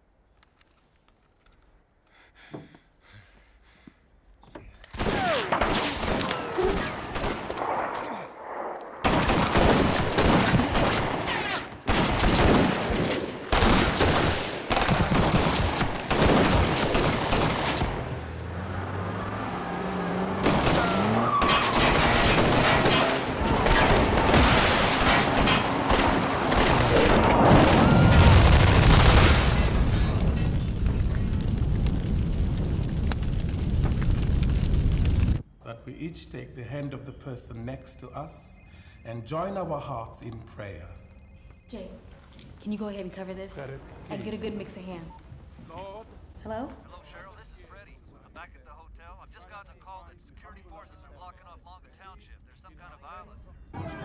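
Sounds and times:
rapid gunfire bursts: 0:09.1 - 0:17.8, 0:20.4 - 0:29.4.

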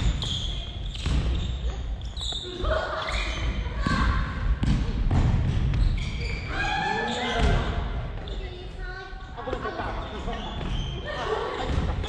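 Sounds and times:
voices echoing in a gymnasium: 0:00.0 - 0:12.0.

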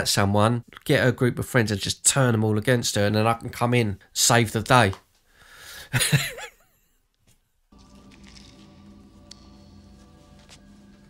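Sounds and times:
sustained film soundtrack music: 0:07.8 - 0:11.0.

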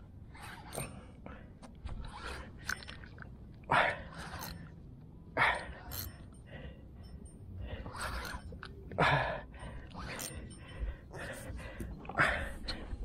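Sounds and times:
person breathing hard: 0:05.4 - 0:13.0.

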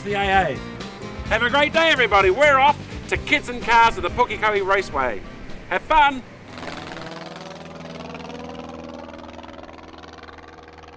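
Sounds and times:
engine running steadily: 0:00.6 - 0:10.9.

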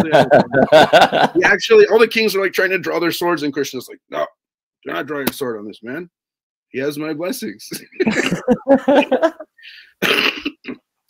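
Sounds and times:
man laughing: 0:00.0 - 0:01.6, 0:07.7 - 0:09.8
man coughing: 0:07.8 - 0:09.2, 0:10.0 - 0:10.8.

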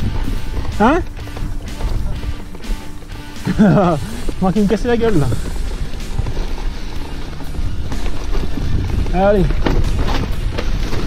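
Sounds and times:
background music: 0:00.0 - 0:11.0
bike tyres rumbling on dirt trail: 0:00.0 - 0:11.0
bike knocks: 0:07.8 - 0:11.0.

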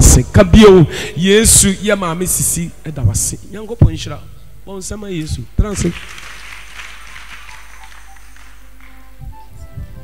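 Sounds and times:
congregation clapping: 0:05.6 - 0:09.2
music with held notes: 0:07.3 - 0:10.0.

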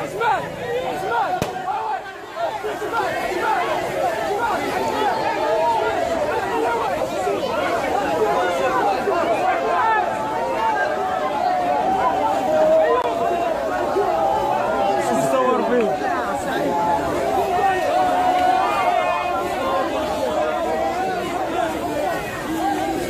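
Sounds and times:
crowd chanting and shouting: 0:00.0 - 0:23.0.

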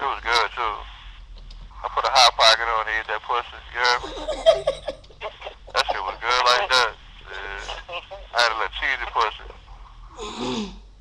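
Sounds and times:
people laughing and talking: 0:03.8 - 0:08.5.

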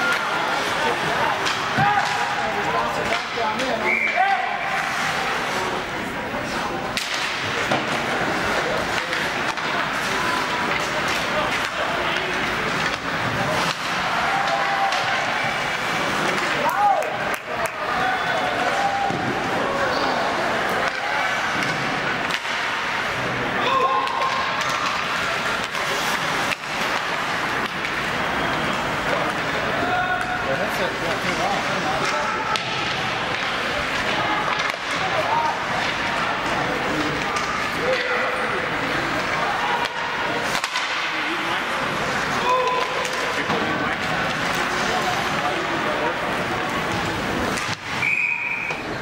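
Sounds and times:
spectators shouting: 0:00.0 - 0:03.0, 0:09.4 - 0:26.3, 0:26.9 - 0:30.8
sharp knocks of sticks and puck: 0:01.3 - 0:03.8, 0:06.9 - 0:17.8, 0:20.7 - 0:23.1, 0:23.8 - 0:29.5, 0:32.0 - 0:36.2, 0:37.0 - 0:38.2, 0:39.2 - 0:41.2, 0:42.1 - 0:45.4, 0:46.6 - 0:48.1.

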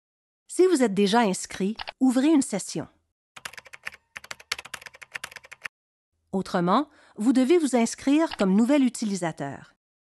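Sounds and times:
computer keyboard typing: 0:03.4 - 0:05.7, 0:08.2 - 0:08.6.

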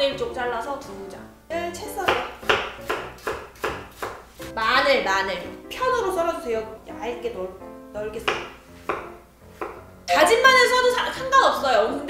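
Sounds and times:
knife slicing onion: 0:02.0 - 0:04.5, 0:08.2 - 0:09.8
knife knocking on wooden board: 0:08.2 - 0:09.8.

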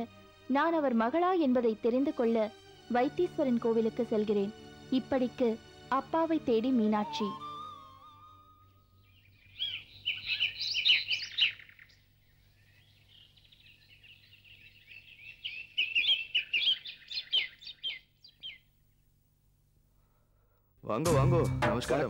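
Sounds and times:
small birds chirping: 0:07.0 - 0:19.2.

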